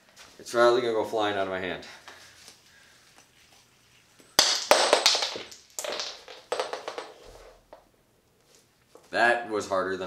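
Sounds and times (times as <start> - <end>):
yo-yo knocking and clattering: 4.3 - 7.9.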